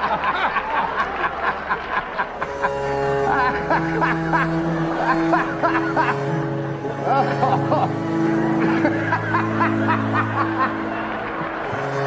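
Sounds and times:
droning music: 0:02.3 - 0:12.0
man laughing rapidly: 0:02.6 - 0:11.0.

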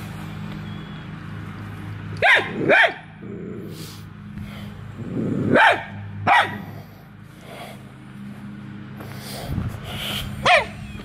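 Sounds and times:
dog barking: 0:02.2 - 0:03.0, 0:05.5 - 0:06.6, 0:10.4 - 0:10.8.

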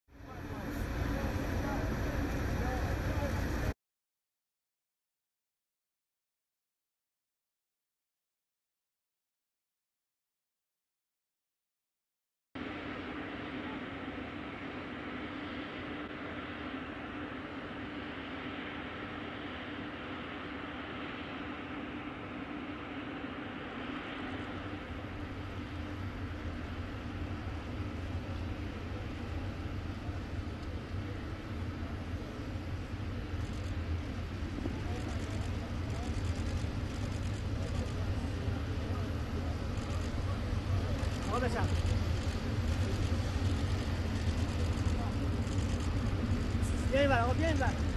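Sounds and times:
indistinct talking: 0:00.2 - 0:03.7, 0:23.5 - 0:47.9
aircraft droning: 0:00.2 - 0:03.8, 0:12.6 - 0:47.9
deep rumble: 0:23.7 - 0:47.9.

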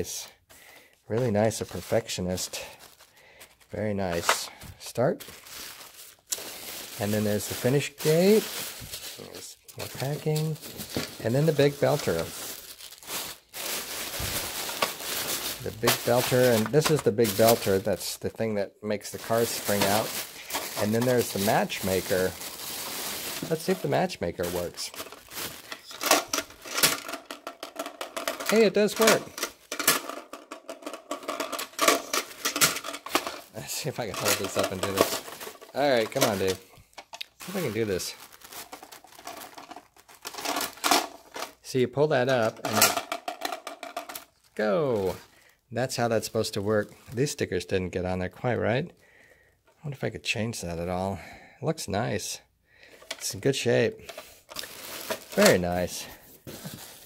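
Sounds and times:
tissue paper rustling: 0:01.2 - 0:04.4, 0:05.2 - 0:18.0, 0:19.1 - 0:26.9, 0:33.0 - 0:36.6, 0:37.4 - 0:41.4, 0:54.5 - 0:57.0.

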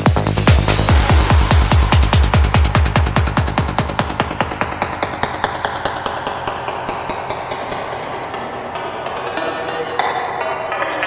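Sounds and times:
fast percussive hits: 0:00.0 - 0:11.0
trance music: 0:00.0 - 0:11.0
falling pitch sweep: 0:00.3 - 0:11.0.

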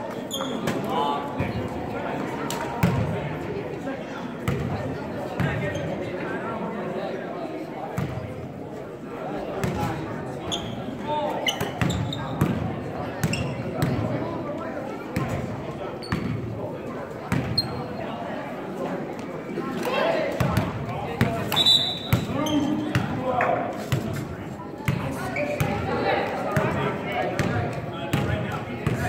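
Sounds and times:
indistinct chatter: 0:00.0 - 0:29.0
sneaker squeaks: 0:00.2 - 0:00.9, 0:05.4 - 0:06.0, 0:10.4 - 0:12.5, 0:13.2 - 0:13.8, 0:16.0 - 0:16.4, 0:17.3 - 0:18.1, 0:21.4 - 0:23.1, 0:25.1 - 0:25.8.

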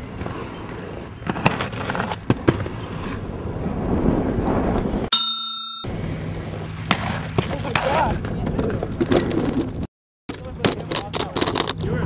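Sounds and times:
wind noise on microphone: 0:02.6 - 0:05.1
bell-like ringing tone: 0:05.1 - 0:06.0.

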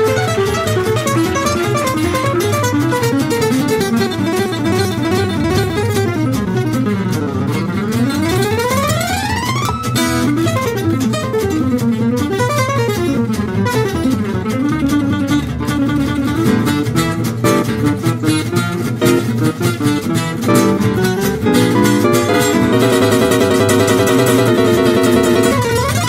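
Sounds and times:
double bass: 0:00.0 - 0:26.0
fast acoustic guitar solo: 0:00.0 - 0:26.0
rhythm guitar: 0:00.0 - 0:26.0.

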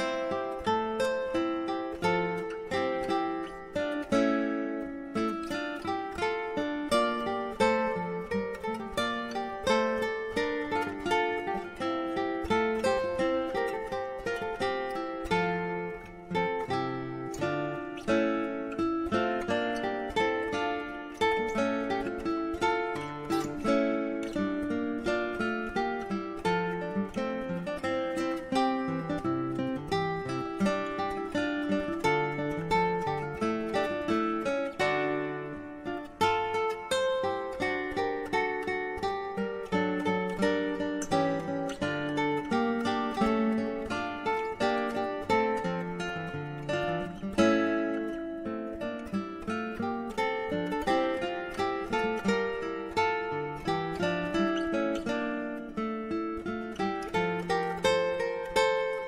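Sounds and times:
acoustic guitar plucking: 0:00.0 - 0:59.0.

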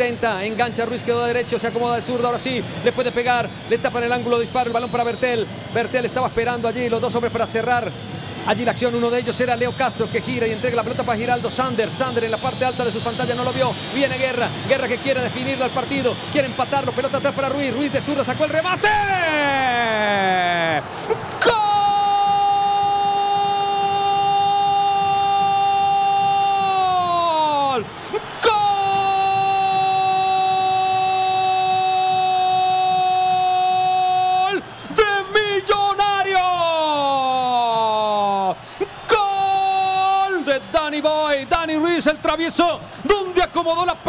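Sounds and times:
commentator shouting goal call: 0:18.4 - 0:20.8
quick gasps: 0:42.8 - 0:43.0.

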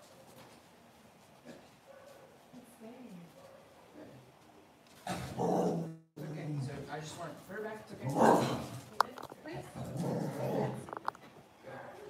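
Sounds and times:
dog growling low: 0:09.7 - 0:10.9.

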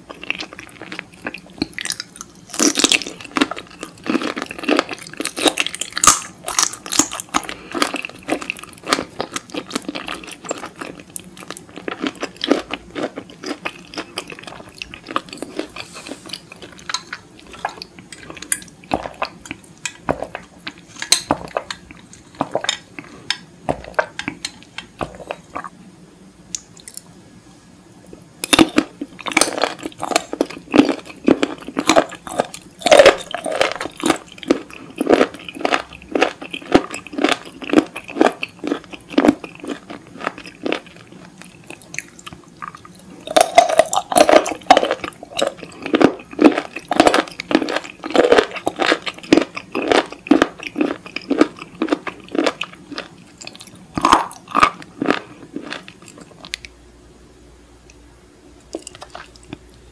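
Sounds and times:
crunchy wet chewing: 0:00.0 - 0:25.7, 0:28.4 - 0:56.7, 0:58.7 - 0:59.8.

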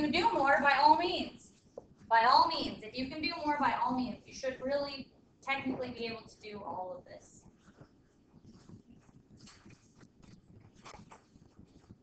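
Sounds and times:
soft clicks and rustles: 0:07.2 - 0:12.0.

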